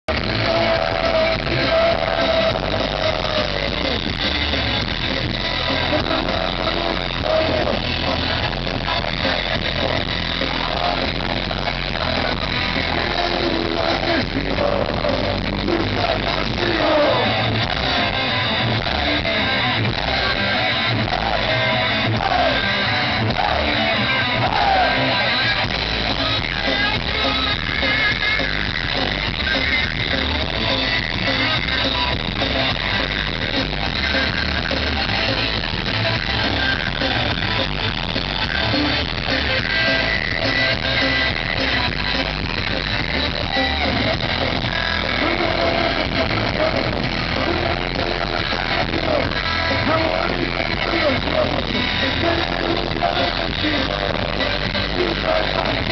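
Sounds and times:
electric guitars: 0:00.0 - 0:55.9
hard rock band playing live: 0:00.1 - 0:55.9.

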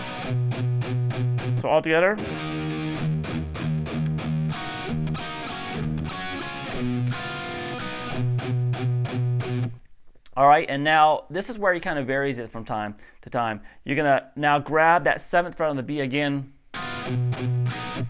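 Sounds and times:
distorted electric guitar riff: 0:00.0 - 0:09.8, 0:16.8 - 0:18.0.

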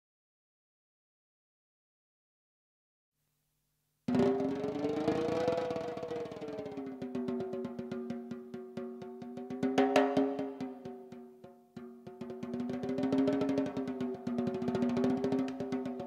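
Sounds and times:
drum kit playing: 0:04.1 - 0:11.2, 0:11.8 - 0:16.0.

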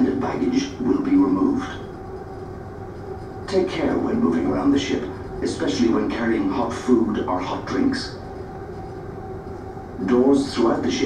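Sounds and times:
faint steady hum: 0:00.0 - 0:11.0
ship engines rumbling: 0:00.0 - 0:11.0.

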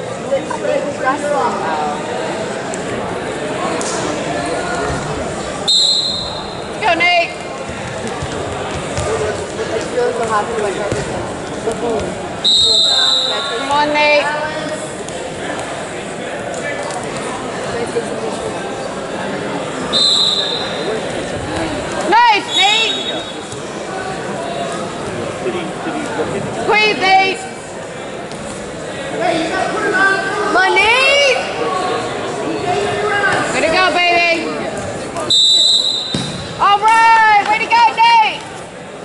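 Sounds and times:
crowd chatter: 0:00.0 - 0:39.0
referee's whistle blast: 0:05.7 - 0:06.6, 0:12.4 - 0:13.6, 0:19.9 - 0:20.8, 0:35.3 - 0:36.4
high-pitched whistle blast: 0:35.3 - 0:36.2.

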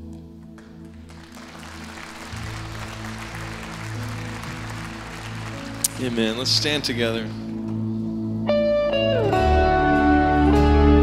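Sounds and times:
congregation applause: 0:00.6 - 0:07.2.

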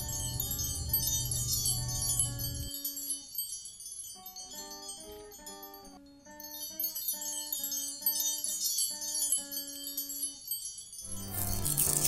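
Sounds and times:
chiming melody: 0:00.0 - 0:12.0
high tinkling shimmer: 0:00.0 - 0:12.0.

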